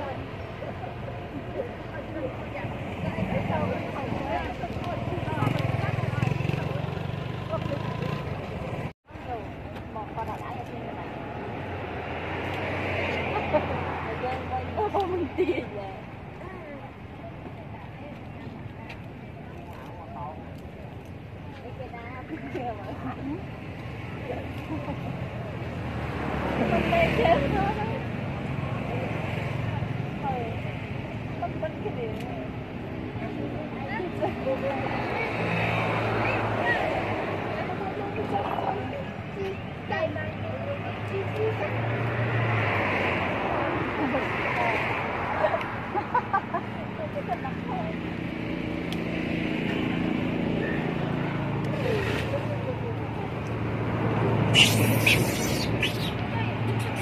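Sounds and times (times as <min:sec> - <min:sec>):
people talking outdoors: 0:00.0 - 0:57.0
vehicle engine humming: 0:45.6 - 0:57.0
indistinct voices: 0:51.7 - 0:57.0.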